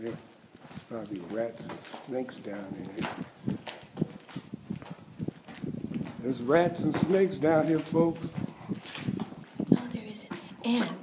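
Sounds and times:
footsteps on dirt and gravel: 0:00.0 - 0:11.0.

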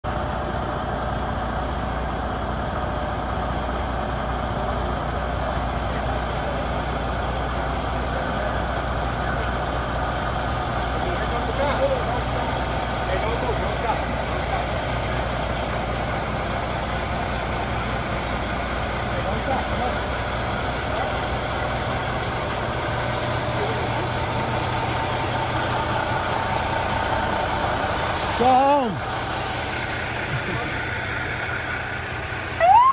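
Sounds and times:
truck diesel engine rumbling: 0:00.0 - 0:32.9
scattered voices: 0:05.5 - 0:17.7.

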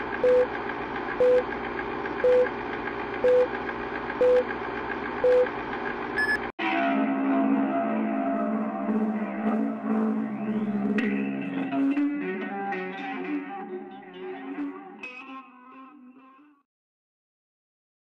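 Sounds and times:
countdown beeps: 0:00.2 - 0:00.5, 0:01.2 - 0:01.4, 0:02.2 - 0:02.5, 0:03.2 - 0:03.5, 0:04.2 - 0:04.4, 0:05.2 - 0:05.5, 0:06.2 - 0:06.4.

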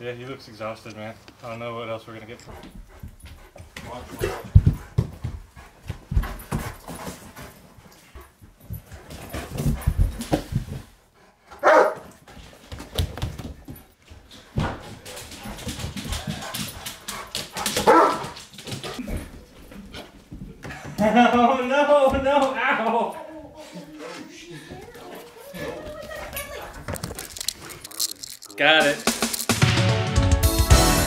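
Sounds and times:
dog barking: 0:11.6 - 0:12.1, 0:17.8 - 0:18.4.

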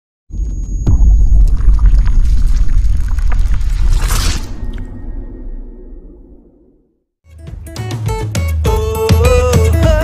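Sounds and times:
crackles and clicks: 0:00.8 - 0:06.6
heavy low rumble: 0:00.9 - 0:07.0.

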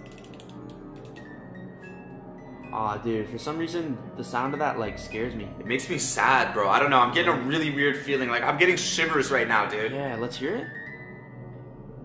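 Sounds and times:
music box mechanism clicking: 0:00.0 - 0:01.2.

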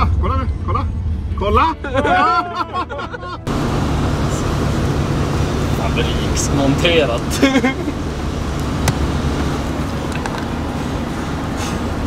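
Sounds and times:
van road and engine noise: 0:00.0 - 0:12.0.

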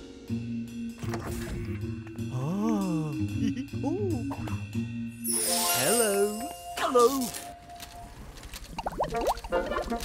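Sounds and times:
cartoon music with low pulse: 0:00.0 - 0:06.9, 0:08.8 - 0:10.0.

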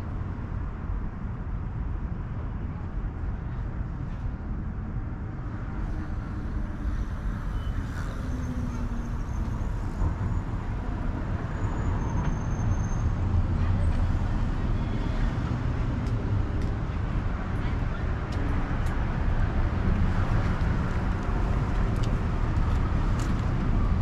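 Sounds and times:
passing cars rumble: 0:02.8 - 0:24.0.

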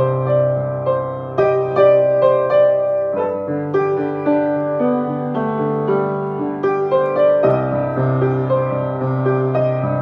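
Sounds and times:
slow piano melody: 0:00.0 - 0:10.0.

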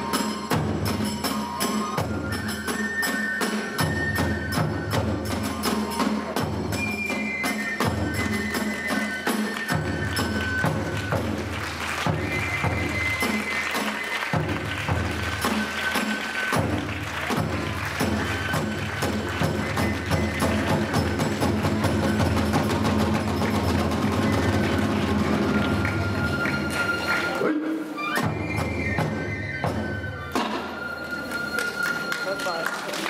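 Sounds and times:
large drum beating: 0:16.6 - 0:26.8
high flute notes: 0:24.0 - 0:32.8.

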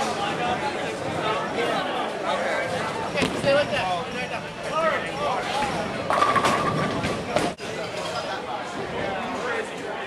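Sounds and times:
people chattering: 0:00.0 - 0:10.0.

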